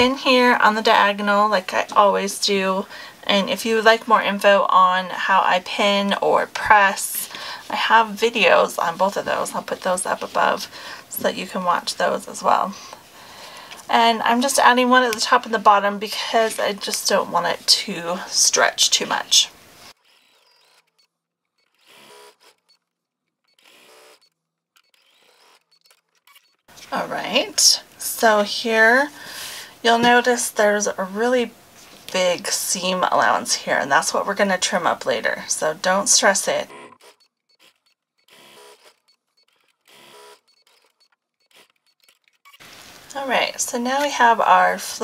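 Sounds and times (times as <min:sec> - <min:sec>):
sewing machine stitching: 0:19.8 - 0:22.9, 0:23.5 - 0:26.6, 0:36.9 - 0:42.7.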